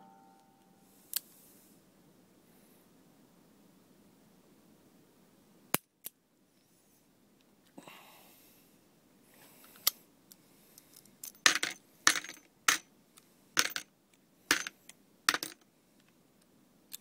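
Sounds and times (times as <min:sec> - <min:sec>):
metal cartridge cases clinking: 0:11.2 - 0:12.8, 0:13.6 - 0:13.8, 0:14.5 - 0:15.6.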